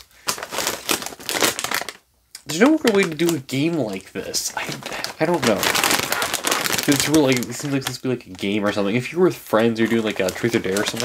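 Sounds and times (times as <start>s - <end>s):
chip bag crinkling: 0.0s - 11.0s.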